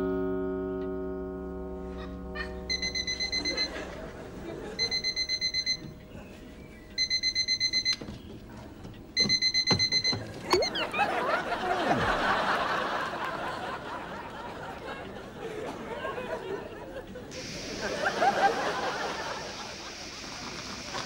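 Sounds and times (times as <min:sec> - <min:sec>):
alarm clock beeping: 0:02.7 - 0:06.0, 0:07.0 - 0:08.1, 0:09.2 - 0:11.2.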